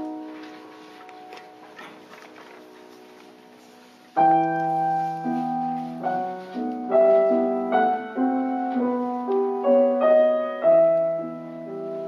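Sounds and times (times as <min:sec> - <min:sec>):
soft piano notes: 0:00.0 - 0:12.0.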